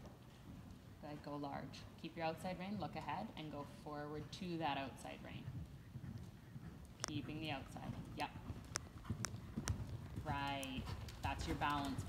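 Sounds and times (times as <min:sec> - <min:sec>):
horse hooves cantering on sand: 0:00.0 - 0:12.0.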